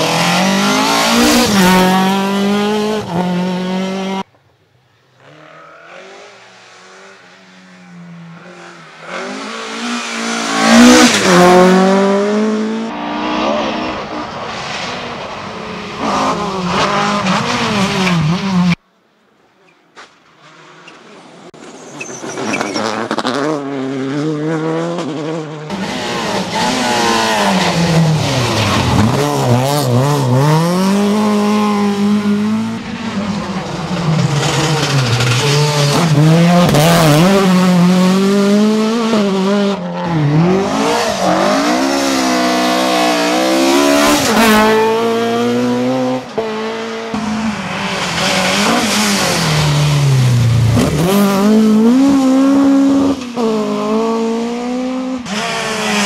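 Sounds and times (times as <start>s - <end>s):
rally car engine revving: 0.0s - 4.3s, 5.2s - 18.8s, 20.4s - 56.0s.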